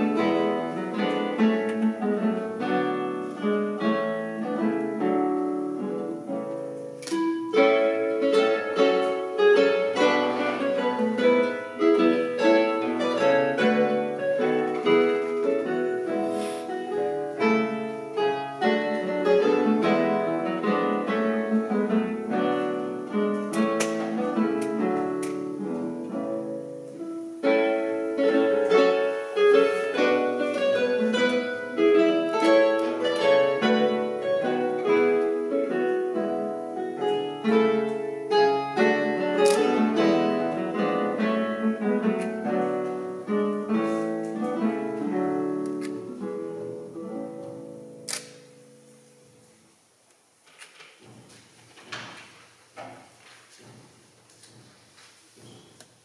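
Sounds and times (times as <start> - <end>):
classical guitars playing: 0.0 - 56.0
sharp click: 48.1 - 48.5.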